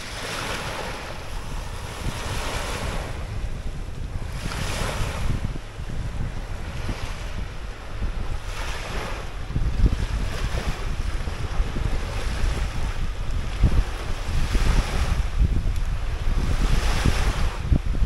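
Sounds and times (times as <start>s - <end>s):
lake waves washing on shore: 0.0s - 18.0s
wind buffeting microphone: 0.0s - 18.0s.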